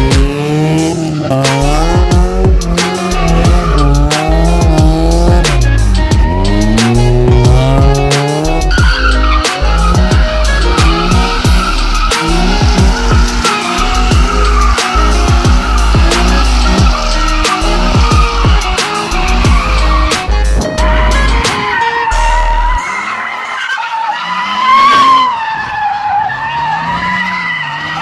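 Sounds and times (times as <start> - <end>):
music with heavy bass beat: 0.0 - 22.8
car tires squealing: 0.0 - 28.0.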